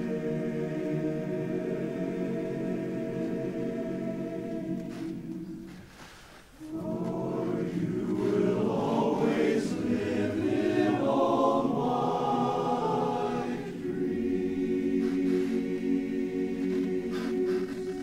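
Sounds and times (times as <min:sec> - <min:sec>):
men's chorus singing a cappella: 0:00.0 - 0:05.8, 0:06.6 - 0:18.0.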